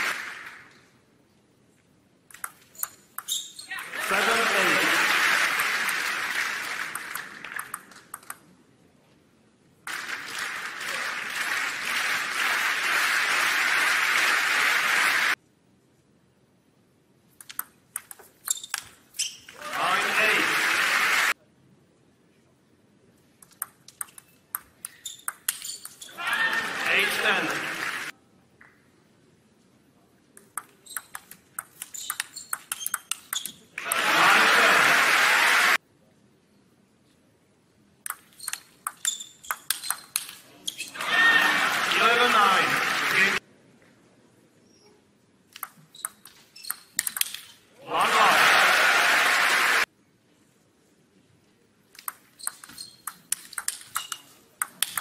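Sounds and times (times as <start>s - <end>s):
crowd applause: 0.0s - 0.7s, 3.8s - 7.9s, 9.9s - 15.4s, 19.6s - 21.4s, 26.2s - 28.1s, 33.8s - 35.8s, 41.0s - 43.4s, 47.8s - 49.9s
table tennis ball ticking: 30.4s - 33.6s, 38.1s - 40.4s, 45.6s - 47.5s, 52.0s - 55.0s.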